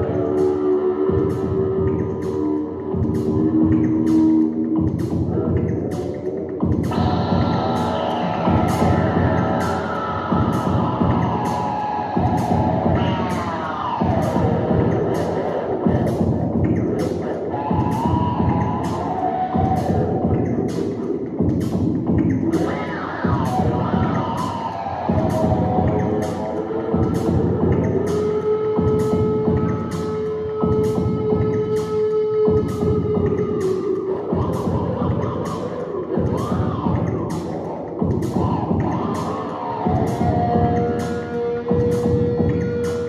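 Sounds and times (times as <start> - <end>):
abstract electric guitar: 5.1 - 21.1, 22.3 - 43.0
sliding sustained drones: 6.9 - 15.8.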